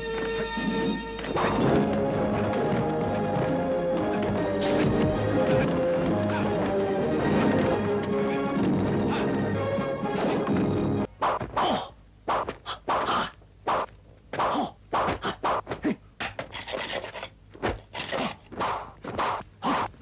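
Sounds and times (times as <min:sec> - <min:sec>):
film score music: 0:00.0 - 0:11.1
wooden staff swishing: 0:04.0 - 0:06.6, 0:18.5 - 0:20.0.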